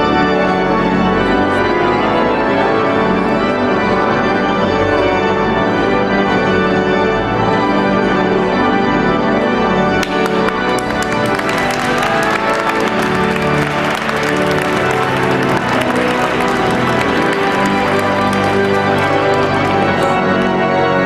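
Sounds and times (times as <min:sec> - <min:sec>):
organ music in sustained chords: 0:00.0 - 0:21.0
guests applauding: 0:10.0 - 0:20.7.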